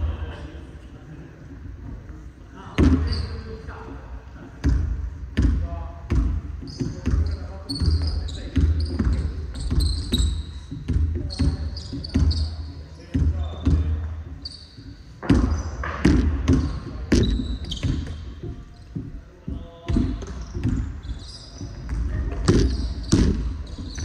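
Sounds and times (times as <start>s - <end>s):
sneakers squeaking: 2.6s - 3.7s, 4.6s - 24.0s
basketball bouncing on hardwood: 4.6s - 12.4s, 15.2s - 19.1s, 19.9s - 21.1s, 21.7s - 24.0s.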